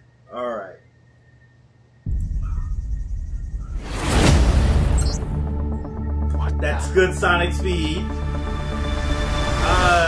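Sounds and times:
deep low soundtrack drone: 4.7s - 10.0s.

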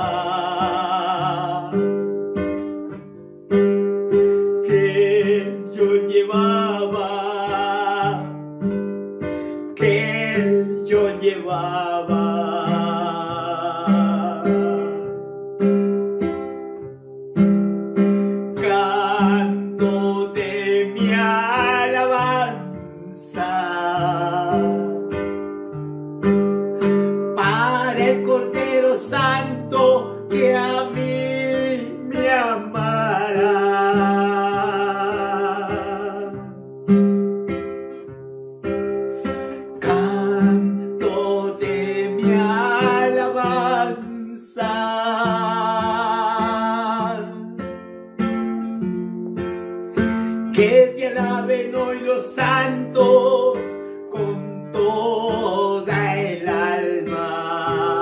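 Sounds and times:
man singing: 0.0s - 2.3s, 4.3s - 8.8s, 9.6s - 15.3s, 18.3s - 25.4s, 26.8s - 36.6s, 39.2s - 47.9s, 49.9s - 58.0s
strummed acoustic guitar: 0.0s - 58.0s.

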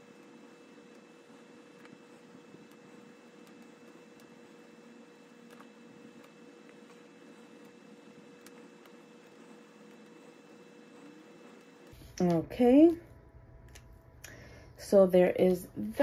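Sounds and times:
felt-tip marker scratching on paper: 0.0s - 11.9s
faint room hum: 0.0s - 16.0s.

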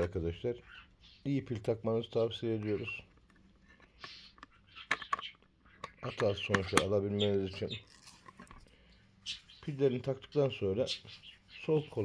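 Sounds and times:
sharp plastic click: 3.9s - 7.0s.

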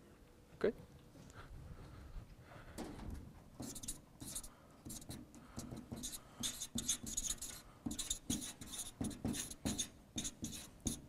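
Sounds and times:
marker pen writing on paper: 3.6s - 11.0s.

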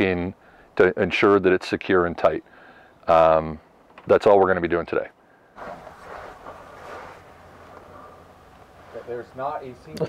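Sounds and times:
faint steady low hum: 0.0s - 10.0s.

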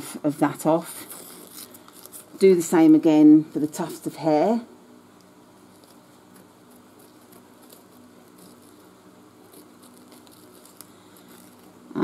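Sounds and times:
low steady hum: 0.0s - 12.0s
stabiliser crinkling: 5.7s - 11.8s.

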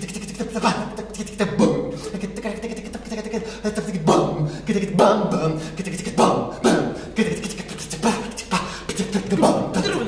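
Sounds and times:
people making mouth sounds: 6.2s - 10.0s.

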